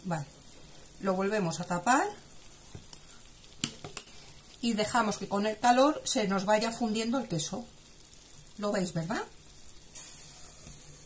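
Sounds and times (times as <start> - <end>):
faint sizzle: 0.0 - 11.0.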